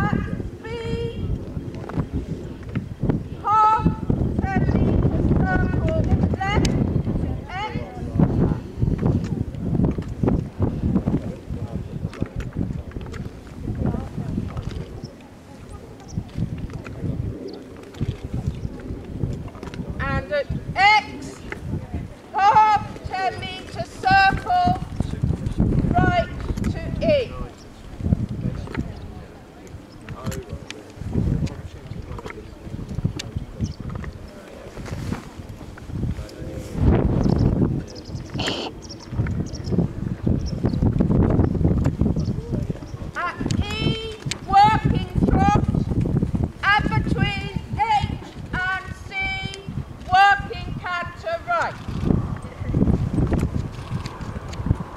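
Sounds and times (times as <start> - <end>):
low voices talking: 0.0 - 54.6
wind buffeting microphone: 0.0 - 54.9.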